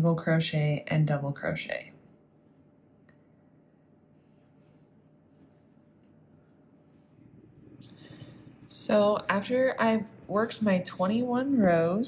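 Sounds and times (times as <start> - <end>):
crochet hook rubbing yarn: 4.1 - 7.8, 8.9 - 11.8.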